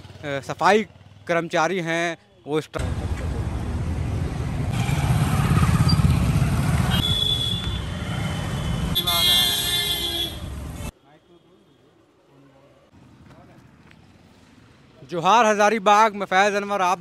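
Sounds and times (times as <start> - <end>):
cars and motorcycles passing: 0.0 - 1.5, 2.8 - 10.9, 12.4 - 15.4
vehicle horn honking: 6.8 - 10.9.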